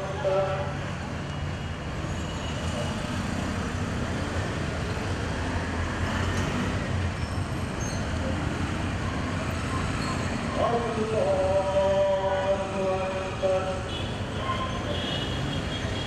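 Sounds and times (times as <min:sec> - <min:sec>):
city road traffic hum: 0:00.0 - 0:16.0.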